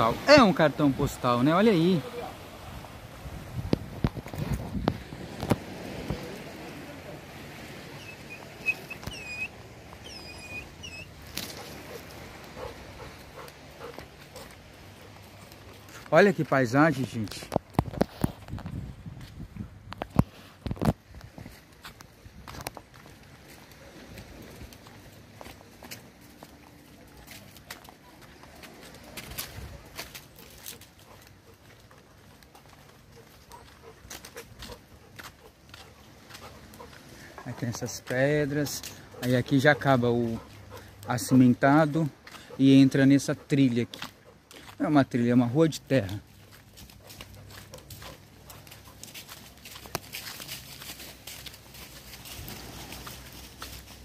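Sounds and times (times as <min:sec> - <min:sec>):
footsteps outdoors: 0:00.0 - 0:54.0
bird chirping and whistling: 0:08.0 - 0:11.1.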